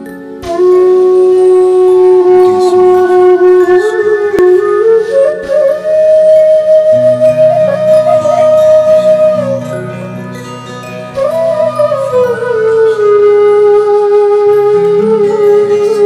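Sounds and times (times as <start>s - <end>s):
low soft accompaniment: 0.0s - 16.0s
slow sad flute melody: 0.0s - 16.0s.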